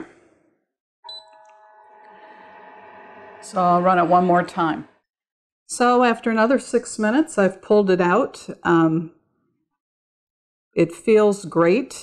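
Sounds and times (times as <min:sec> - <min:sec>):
machine beeping: 0:01.1 - 0:04.8.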